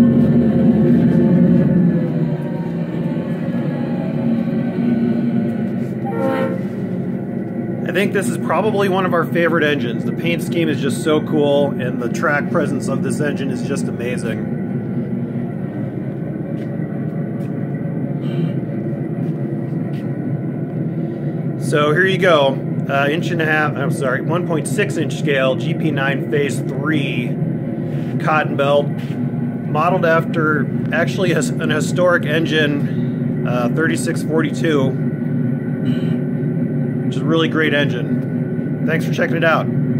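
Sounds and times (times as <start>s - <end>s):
diesel locomotive idling: 0.0s - 39.9s.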